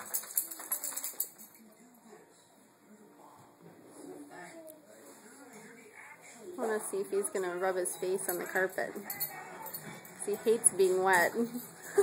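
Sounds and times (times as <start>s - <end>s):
dog collar tags jingling: 0.0s - 1.6s, 7.9s - 12.0s.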